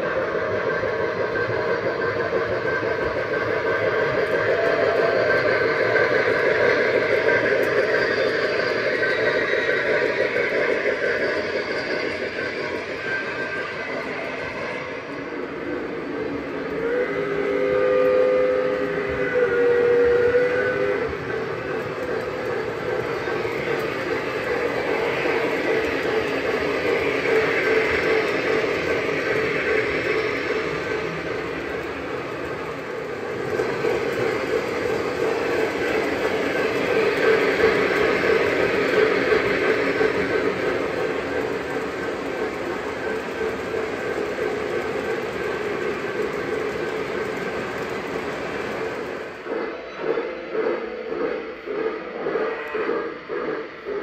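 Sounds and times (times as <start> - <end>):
model train wheels rumbling: 0.0 - 54.0
model steam whistle: 16.8 - 21.5.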